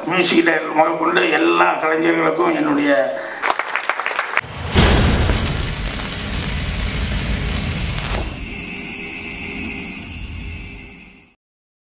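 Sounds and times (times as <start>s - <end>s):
boom with rumbling whoosh: 4.4s - 8.6s
swoosh: 4.4s - 11.2s
steady held tone: 4.8s - 11.4s.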